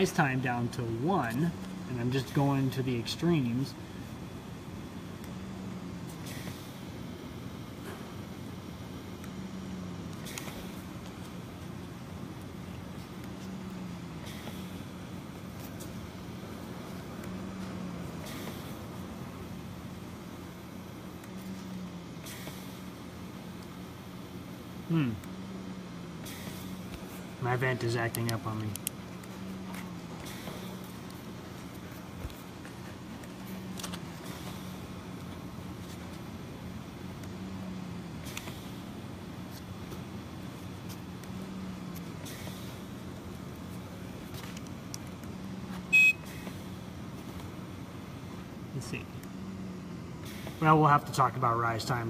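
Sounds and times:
ventilator hiss: 0:00.0 - 0:52.0
ventilator hum: 0:00.0 - 0:52.0
loud electronic beep: 0:45.9 - 0:46.3.

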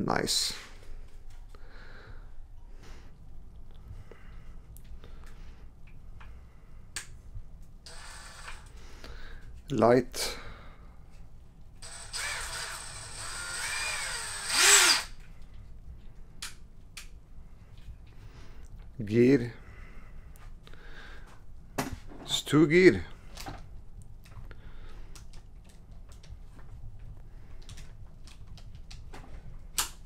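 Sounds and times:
handling of cordless drill: 0:07.9 - 0:08.8, 0:11.8 - 0:15.3.

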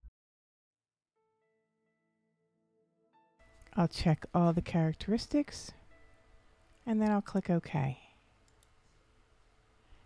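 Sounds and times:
faint computer mouse clicks: 0:08.4 - 0:08.8.

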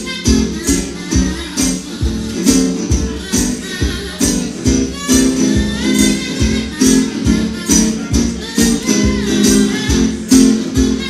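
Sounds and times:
harmonica: 0:00.0 - 0:11.0
steady beat: 0:00.0 - 0:11.0
strummed resonator guitar: 0:00.0 - 0:11.0.

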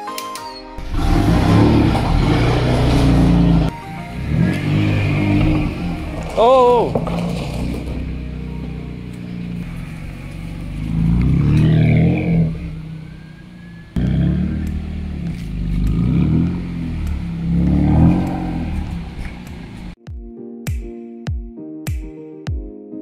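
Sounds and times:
car engine revving: 0:00.8 - 0:20.0.

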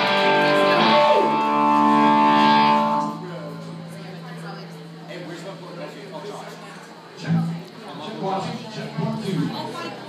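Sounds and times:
electric guitar chord: 0:00.0 - 0:04.7.

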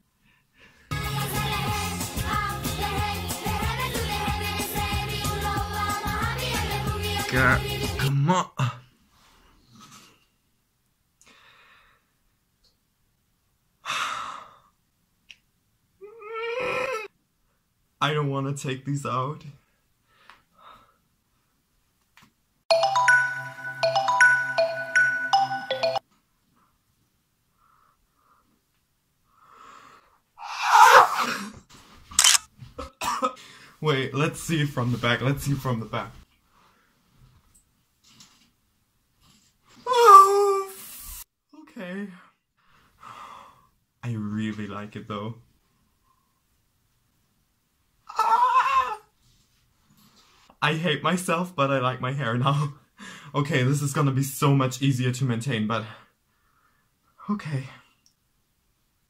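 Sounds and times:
woman's wordless whine: 0:39.9 - 0:40.8, 0:48.1 - 0:49.1.

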